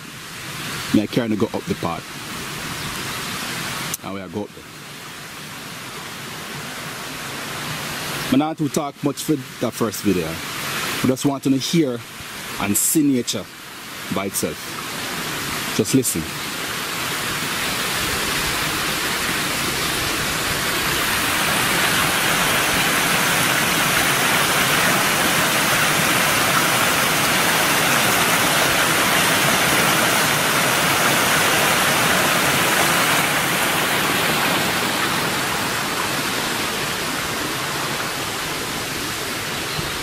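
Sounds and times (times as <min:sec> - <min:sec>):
stream cascading over rocks: 0:00.0 - 0:40.0.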